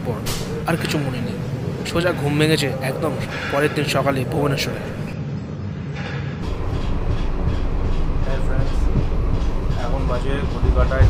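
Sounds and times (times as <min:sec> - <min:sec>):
train wheels rumbling on track: 0:06.0 - 0:11.0.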